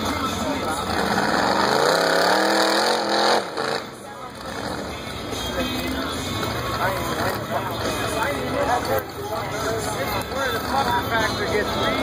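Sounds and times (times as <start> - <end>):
crowd chatter: 0.0 - 12.0
buggy engine revving hard: 0.6 - 5.1.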